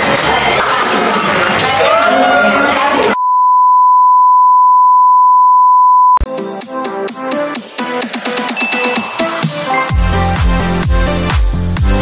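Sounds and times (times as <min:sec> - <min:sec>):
electronic beep tone: 0:03.2 - 0:06.2, 0:08.6 - 0:09.8
music with voices: 0:06.3 - 0:12.0.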